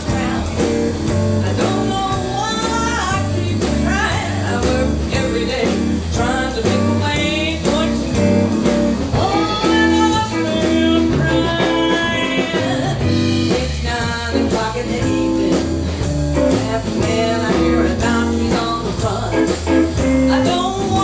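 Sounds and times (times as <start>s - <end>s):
blues band playing: 0.0s - 21.0s
woman singing: 0.0s - 21.0s.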